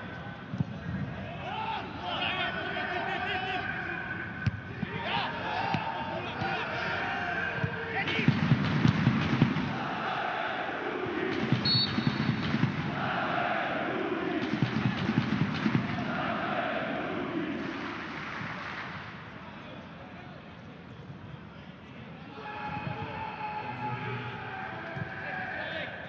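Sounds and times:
football supporters chanting: 4.7 - 8.3, 9.4 - 18.4.

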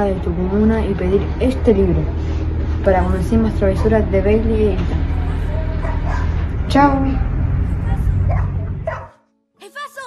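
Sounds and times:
loud low rumble: 0.0 - 9.0.

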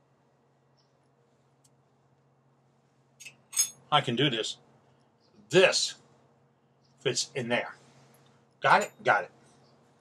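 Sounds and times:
faint steady hum: 0.0 - 10.0
light metallic clinks: 3.2 - 3.9.

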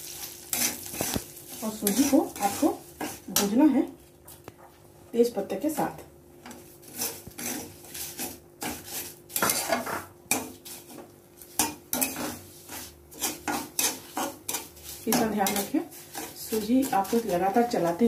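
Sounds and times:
spatula scraping steel pan: 0.5 - 3.6, 6.5 - 18.0.

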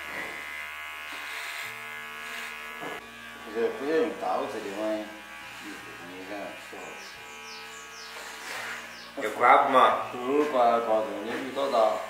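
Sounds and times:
electric hair clipper buzzing: 0.0 - 12.0.

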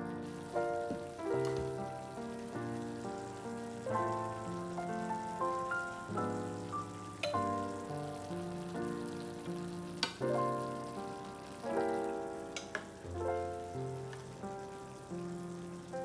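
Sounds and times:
chicken sizzling in pan: 0.0 - 16.0
gentle instrumental music: 0.0 - 16.0.

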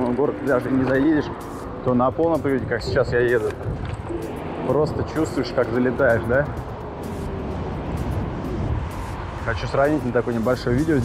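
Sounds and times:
electric scooter rolling: 0.0 - 11.0
wind rush on microphone: 1.1 - 11.0.

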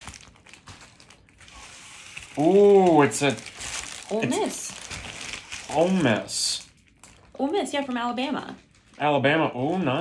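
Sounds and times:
plastic mailer crinkling: 0.0 - 10.0.

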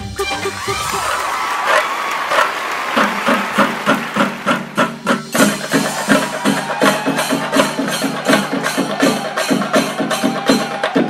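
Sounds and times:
noisy crowd din: 0.5 - 11.0
sharp percussion hits: 2.3 - 11.0.

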